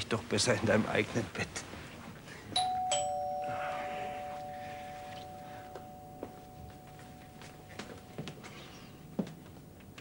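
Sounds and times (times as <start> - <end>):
two-tone doorbell chime: 2.6 - 8.5.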